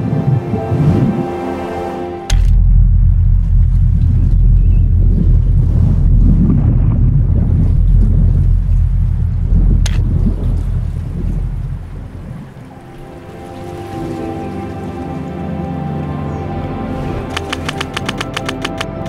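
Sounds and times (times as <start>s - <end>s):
loud deep rumble: 0.0s - 12.8s
soft music with held tones: 12.6s - 19.0s
sharp click: 17.3s - 19.0s.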